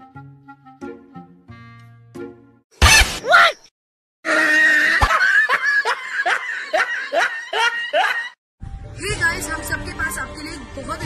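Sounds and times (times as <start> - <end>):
person laughing: 4.8 - 8.4.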